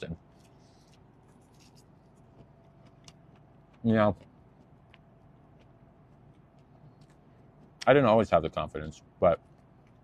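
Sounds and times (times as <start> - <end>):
quiet crispy chewing: 0.0 - 7.9, 9.3 - 10.0.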